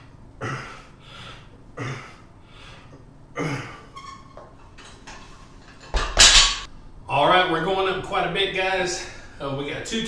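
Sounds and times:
metal bar clanking on floor: 4.7s - 6.7s.

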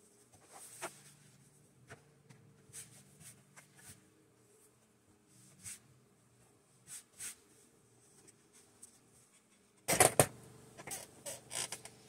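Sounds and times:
soft rubbing: 0.0s - 9.8s.

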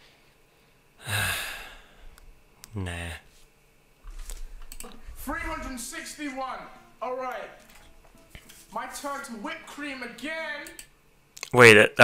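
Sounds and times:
man sighing: 1.0s - 2.2s.

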